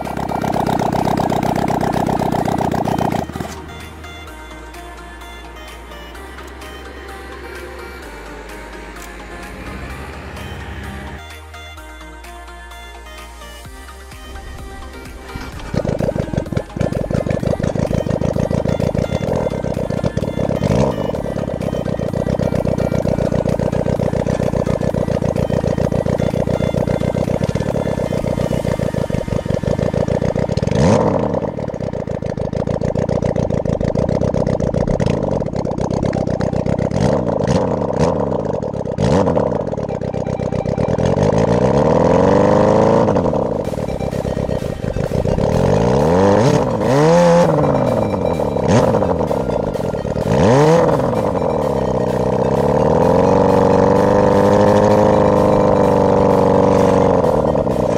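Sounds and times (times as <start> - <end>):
go-kart engine revving: 0.0 - 11.9, 12.7 - 57.9
music: 0.0 - 35.1, 39.0 - 57.9.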